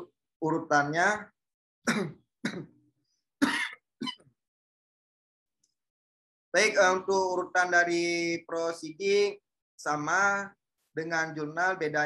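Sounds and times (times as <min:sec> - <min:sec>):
person clearing throat: 0:01.8 - 0:02.8, 0:03.4 - 0:04.2.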